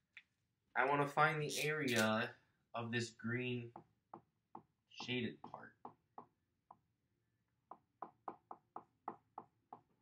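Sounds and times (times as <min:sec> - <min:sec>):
marker tapping on whiteboard: 0:03.7 - 0:10.0.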